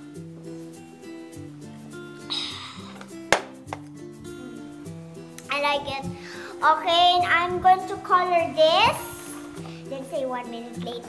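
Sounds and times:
background music: 0:00.0 - 0:11.0
mug knocking on table: 0:03.3 - 0:03.5.

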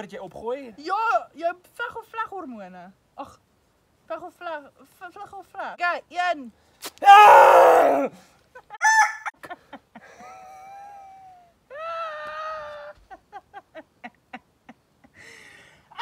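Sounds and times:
wax strip tearing off skin: 0:06.8 - 0:07.0
man yelling in pain: 0:07.0 - 0:08.1
man laughing: 0:08.6 - 0:11.5.

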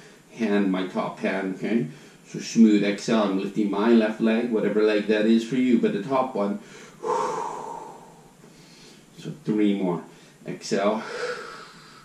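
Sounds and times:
man exhaling: 0:06.6 - 0:09.0, 0:11.0 - 0:12.0.

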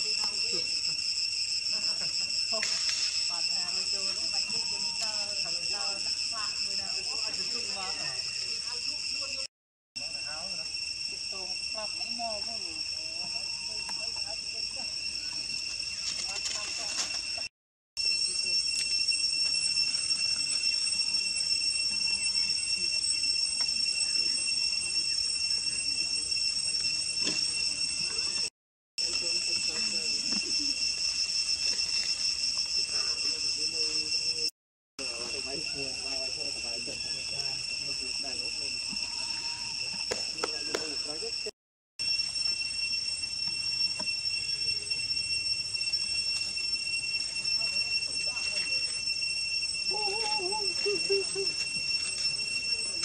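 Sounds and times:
cicadas droning: 0:00.0 - 0:53.0
faint ticks in leaf litter: 0:02.0 - 0:05.4, 0:15.3 - 0:17.4, 0:29.0 - 0:33.4, 0:49.9 - 0:53.0.

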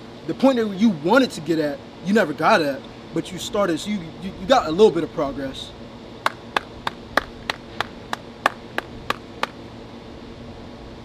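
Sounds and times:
steady low hum: 0:00.0 - 0:11.0
man clapping hands: 0:06.2 - 0:09.6.

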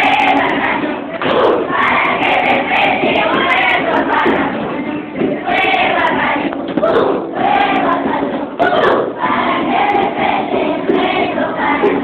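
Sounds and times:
children's choir singing: 0:00.0 - 0:12.0.

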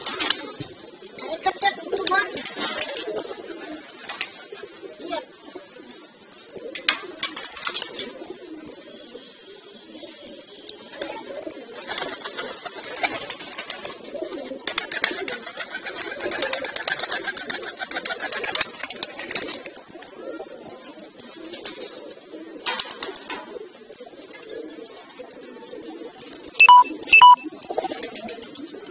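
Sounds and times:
pigeons cooing: 0:00.0 - 0:28.9.

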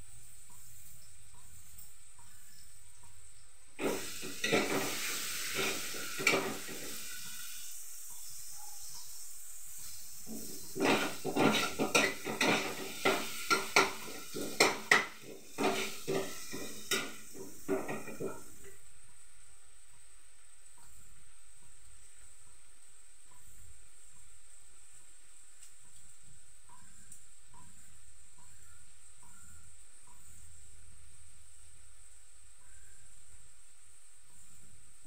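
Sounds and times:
metal spatula scraping a pan: 0:03.8 - 0:07.4, 0:09.8 - 0:18.5
food sizzling in a frying pan: 0:03.8 - 0:18.9.

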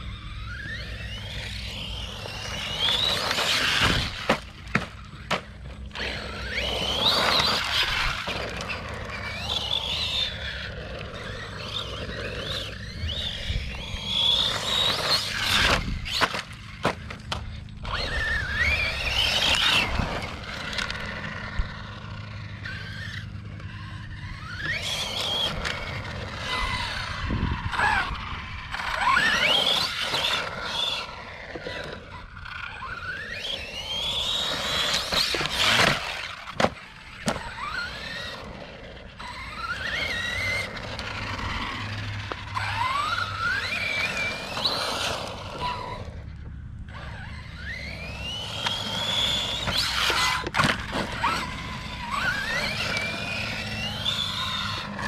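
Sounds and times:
electric motor whining: 0:00.0 - 0:55.0
tyres on dirt: 0:00.0 - 0:55.0.

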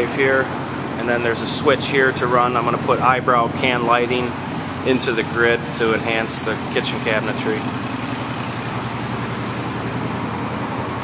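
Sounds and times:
low mechanical drone: 0:00.0 - 0:11.0.

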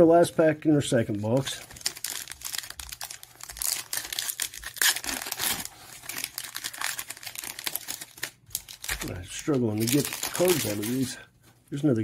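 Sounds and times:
foil wrapper tearing and crinkling: 0:01.2 - 0:11.2.

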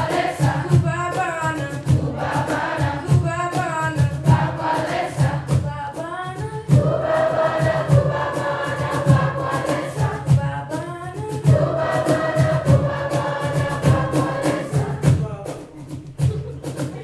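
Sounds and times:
steady low beat: 0:06.7 - 0:17.0
choir singing held chord: 0:06.8 - 0:10.4, 0:11.4 - 0:15.3.

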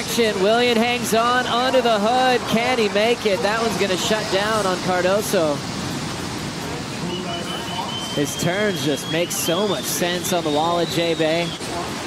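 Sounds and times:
ocean surf breaking: 0:00.0 - 0:12.0.

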